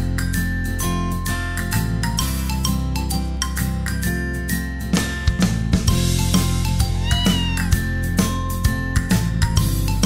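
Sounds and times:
instrumental children's music: 0.0 - 10.0
cat meow: 6.9 - 7.8.

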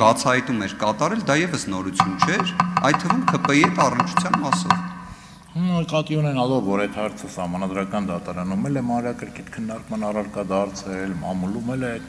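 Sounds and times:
man speaking into a microphone: 0.0 - 4.8, 5.5 - 12.0.

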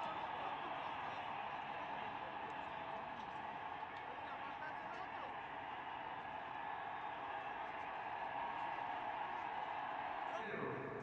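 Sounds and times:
empty stadium ambience: 0.0 - 11.0.

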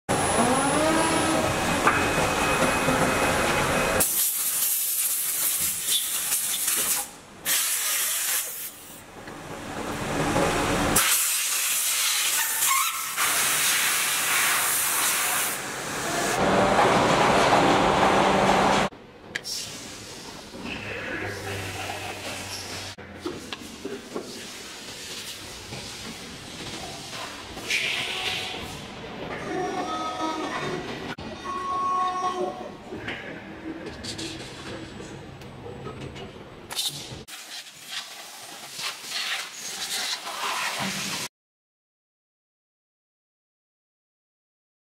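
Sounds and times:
machine whine: 0.1 - 4.0
machine running noise: 0.1 - 4.1, 15.6 - 18.9.

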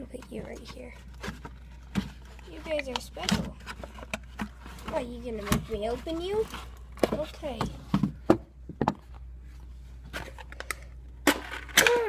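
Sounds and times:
low steady hum: 0.0 - 12.0
food packaging clicks and rustles: 10.1 - 11.9.

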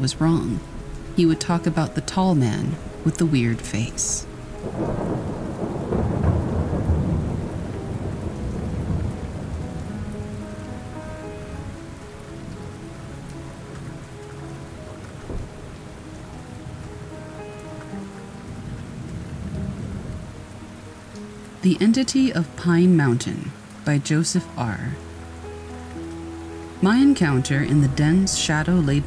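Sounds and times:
thunder rumbling: 0.0 - 22.0, 26.8 - 29.0
soft sustained music notes: 0.0 - 29.0
steady rain: 0.0 - 29.0.

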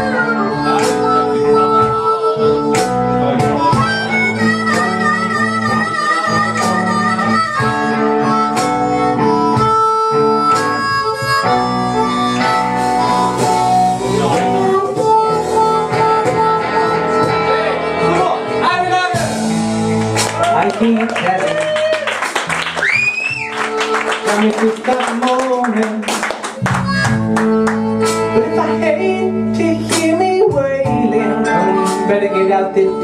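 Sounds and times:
amplified harmonica solo: 0.0 - 20.6, 21.2 - 25.6, 26.3 - 33.0
live blues band: 0.0 - 33.0.

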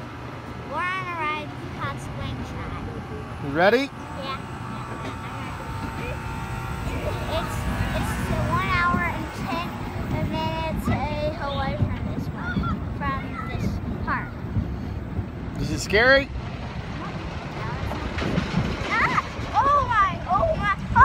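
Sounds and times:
low rumble: 0.0 - 21.0.

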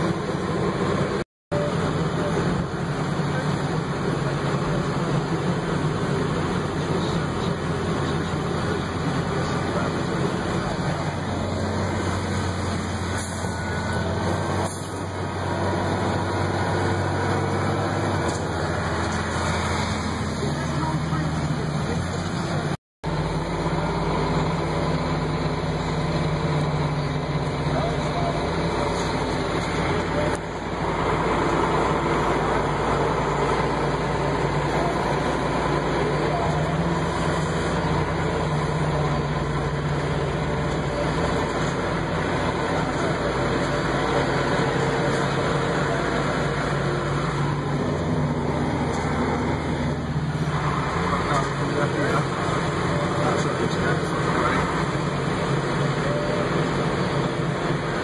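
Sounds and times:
tractor diesel engine running: 0.0 - 58.0.

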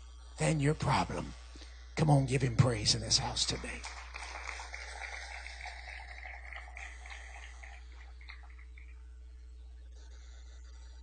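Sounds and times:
low electrical hum: 0.0 - 11.0
congregation applauding: 3.3 - 8.9.

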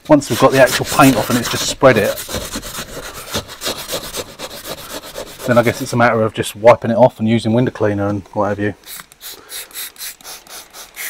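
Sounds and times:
scrubbing pad on wet glass: 0.2 - 6.0.

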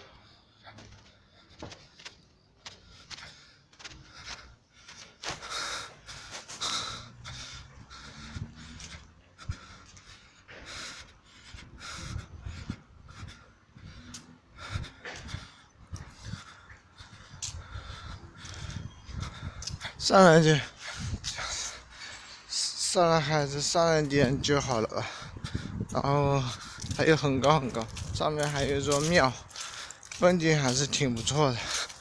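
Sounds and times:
person panting hard: 0.0 - 22.5, 24.8 - 27.0, 29.4 - 32.0.

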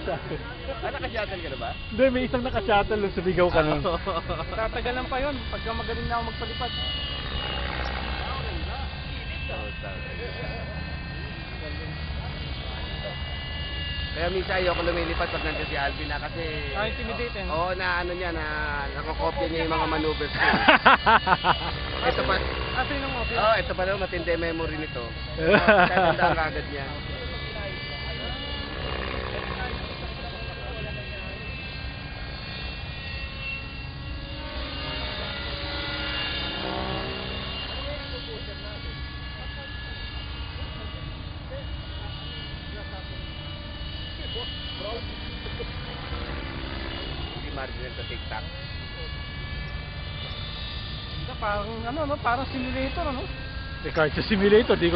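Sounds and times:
faint voices: 0.0 - 20.6, 21.3 - 54.9
helicopter engine and rotors whining: 0.0 - 54.9.

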